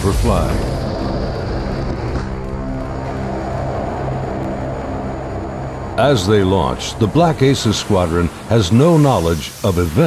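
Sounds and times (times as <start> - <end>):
slow music of held chords: 0.6 - 8.6.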